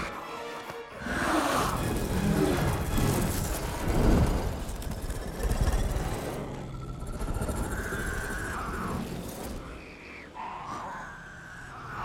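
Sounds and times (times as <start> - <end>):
low rumbling creature growls: 1.0 - 12.0.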